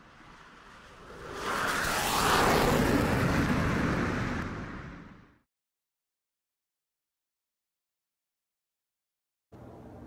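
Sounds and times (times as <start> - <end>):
cinematic whoosh and rumble: 0.0 - 5.4.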